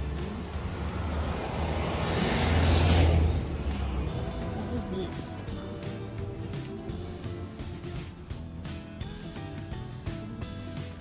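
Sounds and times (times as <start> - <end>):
rushing noise: 0.0 - 7.2.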